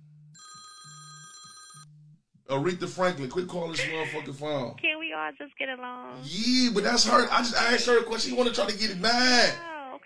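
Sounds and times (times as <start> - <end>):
faint electronic phone ring: 0.4 - 1.9.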